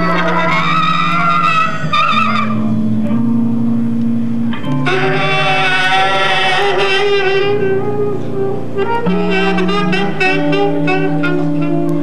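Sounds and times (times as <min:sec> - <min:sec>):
free-improvised band music: 0:00.0 - 0:12.0
high wavering held note: 0:04.5 - 0:12.0.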